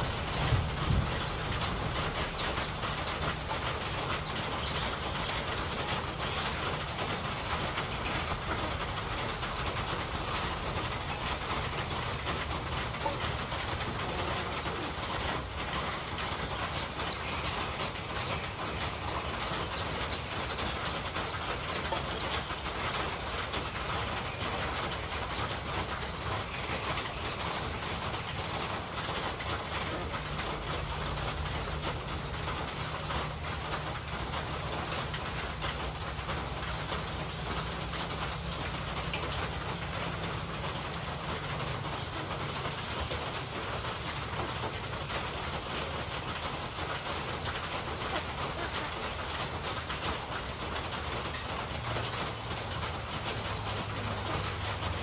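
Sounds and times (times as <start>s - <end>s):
rushing outdoor hiss: 0.0s - 55.0s.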